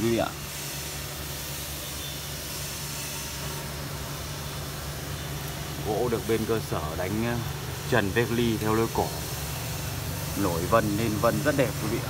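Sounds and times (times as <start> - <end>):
continuous low hum: 0.0 - 12.0
even hiss: 0.0 - 12.0.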